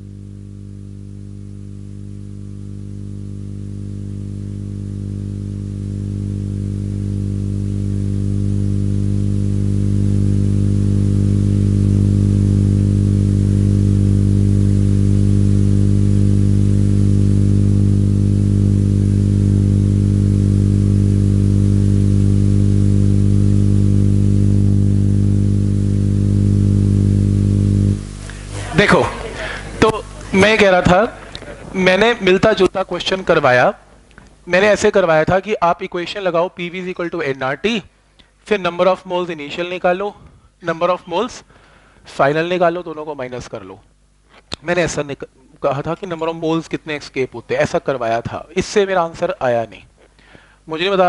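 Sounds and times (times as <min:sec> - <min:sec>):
electrical hum: 0:00.0 - 0:51.0.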